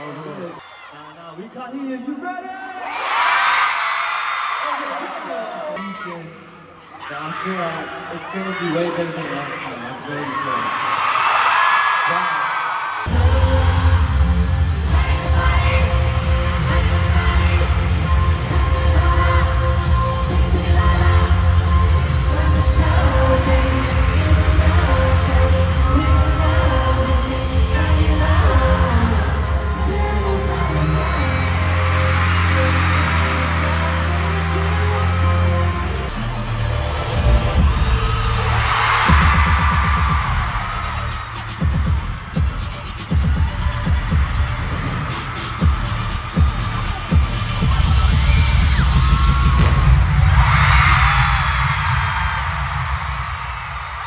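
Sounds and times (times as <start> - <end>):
pop music with heavy bass and singing: 0.0 - 54.0.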